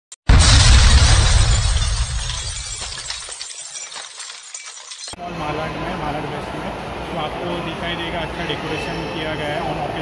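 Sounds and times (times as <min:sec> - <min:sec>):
shattering crackle: 0:00.2 - 0:05.2
heavy impact with deep boom: 0:00.3 - 0:03.1.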